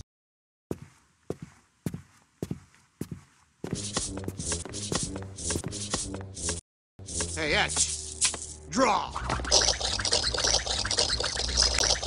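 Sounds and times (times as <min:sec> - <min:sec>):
cartoon boot footsteps: 0:00.7 - 0:08.6.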